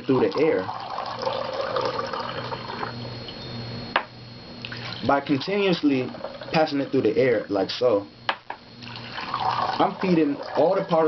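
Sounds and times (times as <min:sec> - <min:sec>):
water poured between glasses: 0:00.7 - 0:02.9, 0:08.8 - 0:10.8.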